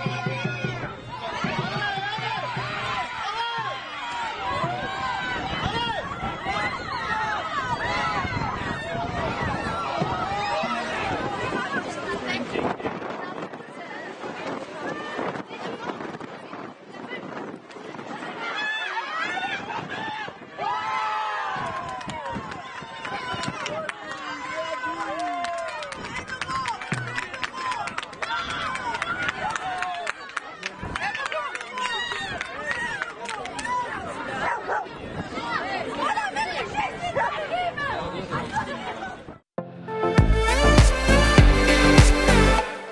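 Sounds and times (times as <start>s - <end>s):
players shouting in celebration: 0.0s - 12.0s
voices calling out and chattering: 0.0s - 39.5s.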